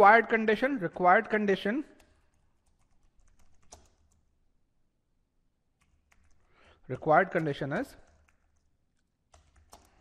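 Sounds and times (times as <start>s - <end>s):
typing on computer keyboard: 2.0s - 4.3s, 5.8s - 6.5s, 7.4s - 10.0s.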